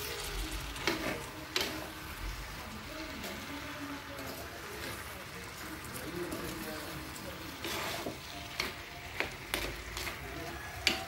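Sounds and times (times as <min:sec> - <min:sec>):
fruit sizzling in oil: 0:00.0 - 0:11.0.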